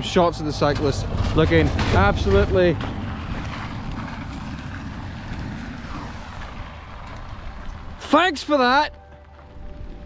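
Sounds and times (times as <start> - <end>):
wind buffeting microphone: 0.6 - 8.7
heavy rain: 1.6 - 8.1.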